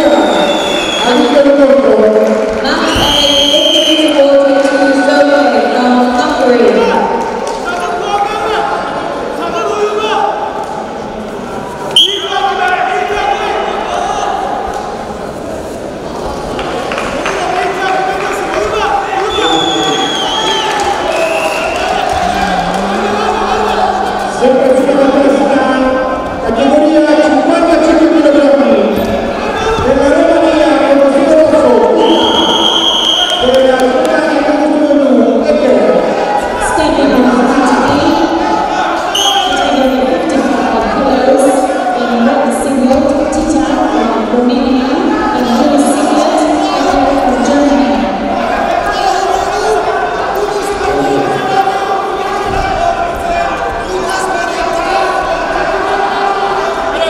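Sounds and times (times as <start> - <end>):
crowd shouting and chanting: 0.0 - 57.0
referee's whistle blast: 0.2 - 1.4, 12.0 - 12.4, 32.0 - 33.4, 39.2 - 39.8.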